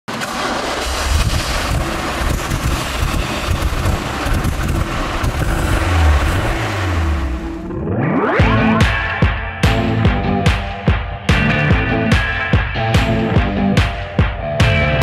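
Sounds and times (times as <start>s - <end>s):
car engine running: 0.1s - 9.1s
deep exhaust rumble: 0.2s - 8.0s
rising musical sweep: 5.6s - 10.0s.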